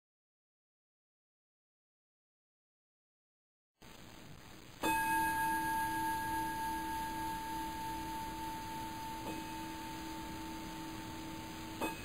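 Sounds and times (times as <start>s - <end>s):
metal bell tone ringing: 4.8s - 12.0s.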